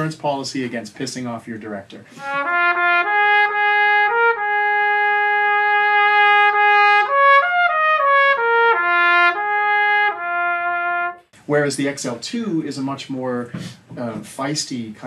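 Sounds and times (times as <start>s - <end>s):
solo trumpet melody: 2.1s - 11.3s.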